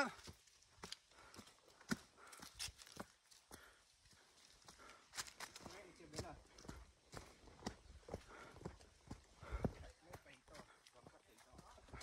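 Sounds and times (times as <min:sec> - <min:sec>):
footsteps on stony dirt trail: 0:00.1 - 0:12.0.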